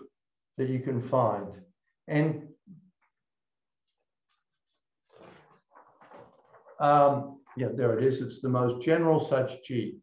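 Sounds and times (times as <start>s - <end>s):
paper sheets rustling: 4.2s - 7.8s.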